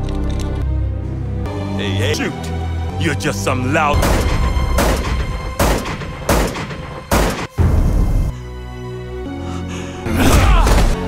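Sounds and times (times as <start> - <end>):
dramatic orchestral music: 0.0 - 11.0.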